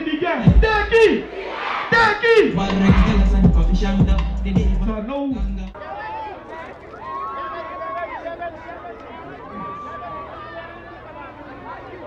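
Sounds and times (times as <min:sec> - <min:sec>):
man shouting over sound system: 0:00.0 - 0:01.3, 0:01.9 - 0:03.3
festival crowd: 0:00.0 - 0:12.0
deep bass hit: 0:00.5 - 0:00.9, 0:02.6 - 0:05.8.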